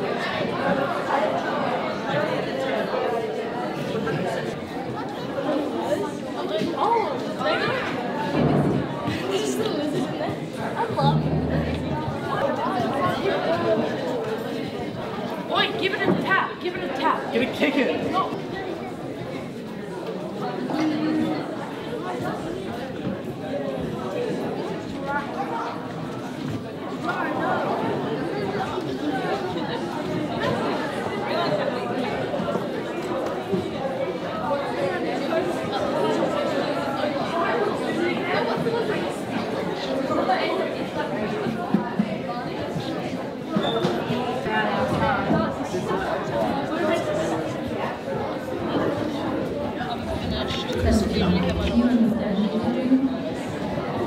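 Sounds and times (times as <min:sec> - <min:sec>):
chatter of many people: 0:00.0 - 0:54.0.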